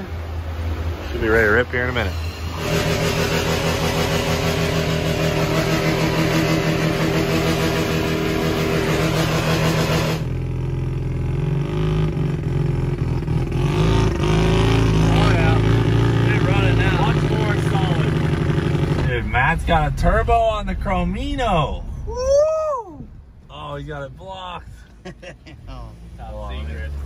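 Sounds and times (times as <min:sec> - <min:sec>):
van engine driving heard from cab: 0:00.0 - 0:27.0.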